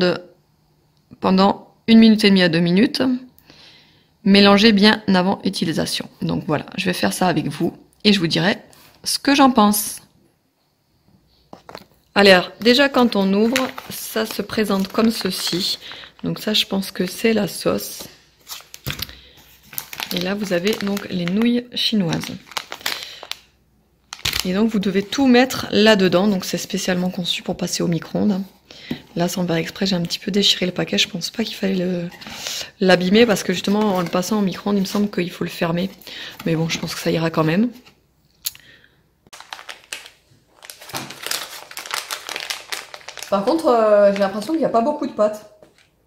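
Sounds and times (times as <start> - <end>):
food packaging rustling: 11.5 - 23.5, 24.1 - 25.5, 31.2 - 38.0, 39.3 - 44.6.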